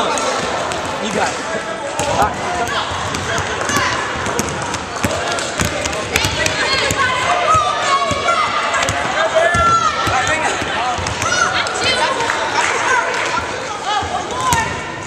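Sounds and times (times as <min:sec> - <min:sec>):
basketballs bouncing on hardwood floor: 0:02.0 - 0:11.4.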